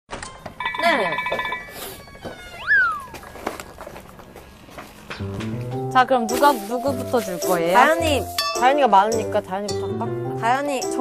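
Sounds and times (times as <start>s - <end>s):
sliding whistle sound effect: 2.6s - 3.2s
woman speaking: 5.9s - 11.0s.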